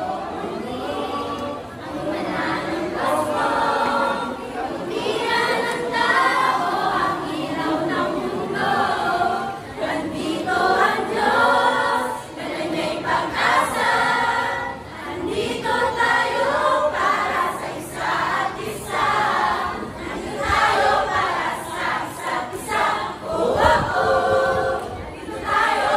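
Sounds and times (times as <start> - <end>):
female voices singing in unison: 0.0 - 25.9.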